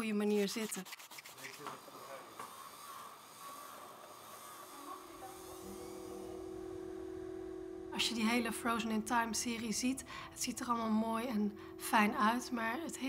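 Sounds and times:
electric rotary tool grinding: 1.6s - 7.9s
held low musical chord: 5.0s - 13.0s.

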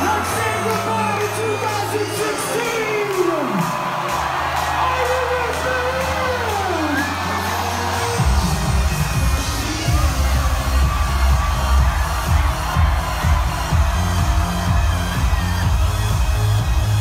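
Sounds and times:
electronic dance music: 0.0s - 17.0s.

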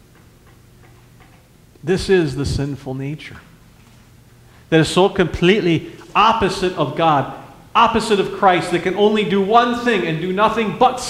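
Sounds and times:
low steady hum: 0.0s - 11.0s
man speaking: 1.8s - 3.5s, 4.7s - 11.0s.

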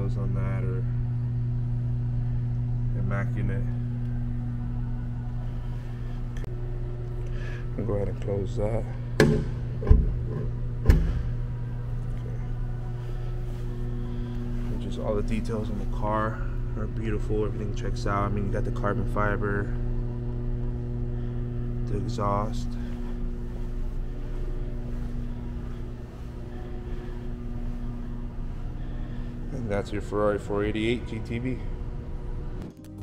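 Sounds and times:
low mechanical hum: 0.0s - 33.0s
faint steady tones: 10.9s - 32.6s.

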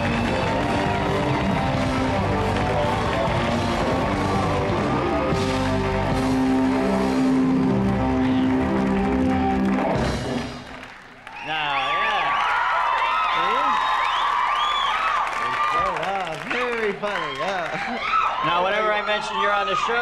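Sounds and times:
house band playing walk-on music: 0.0s - 10.9s.

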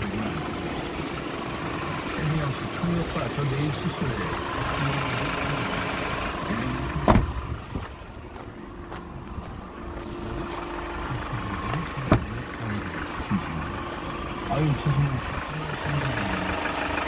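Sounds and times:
truck engine idling: 0.0s - 17.0s.

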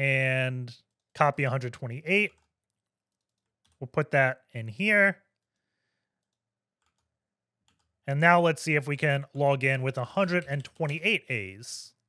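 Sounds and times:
person speaking: 0.0s - 2.4s, 3.8s - 5.2s, 8.1s - 12.0s.

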